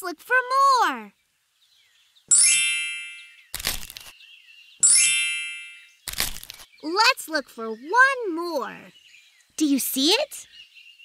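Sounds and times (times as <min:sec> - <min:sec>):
bright ringing chime: 0:02.3 - 0:03.4, 0:04.8 - 0:06.0
crunch of dry leaves: 0:06.1 - 0:06.7.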